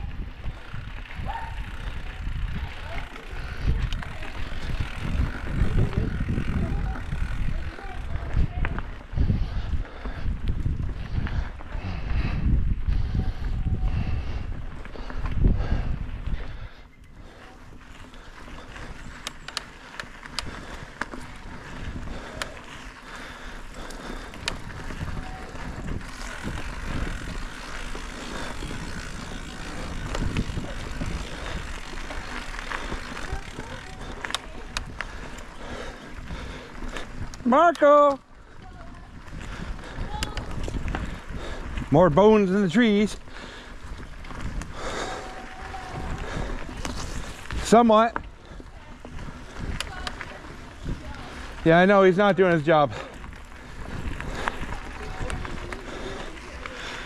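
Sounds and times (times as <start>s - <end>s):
wind rumble on microphone: 0.0s - 17.9s, 24.1s - 37.4s, 38.4s - 42.0s, 43.8s - 47.7s, 48.5s - 51.7s, 53.2s - 56.7s
bike clicks and rattles: 0.0s - 57.0s
bike tyres rolling on dirt: 0.0s - 57.0s.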